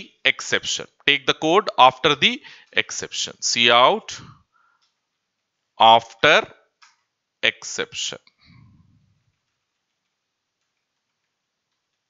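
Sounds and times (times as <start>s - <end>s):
faint keyboard typing clicks: 9.2s - 12.0s.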